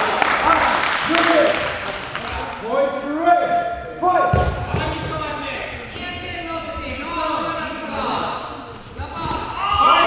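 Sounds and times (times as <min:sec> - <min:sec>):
voices calling out in a hall: 0:00.0 - 0:10.0
low thumps: 0:03.7 - 0:07.1.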